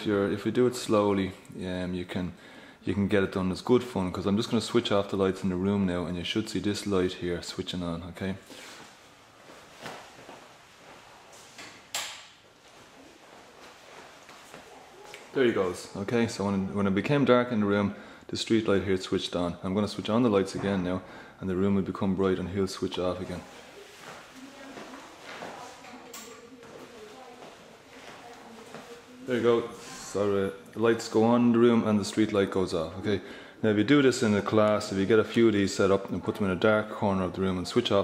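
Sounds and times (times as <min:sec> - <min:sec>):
rustle of movement: 0:08.5 - 0:11.6
faint knocks and movement: 0:08.5 - 0:15.4.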